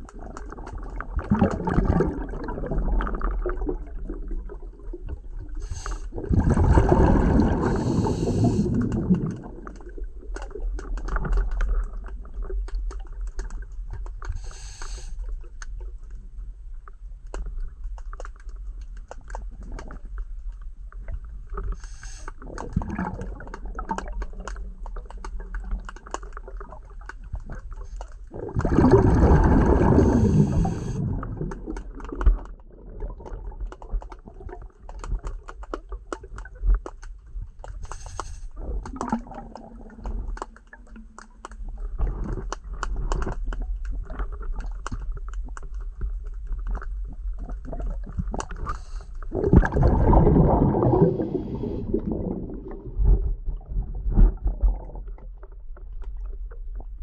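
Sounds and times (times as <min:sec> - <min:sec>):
underwater clicking and crackling: 0:00.0 - 0:57.0
water rushing and gurgling: 0:06.2 - 0:09.4, 0:28.5 - 0:32.1, 0:49.3 - 0:53.3.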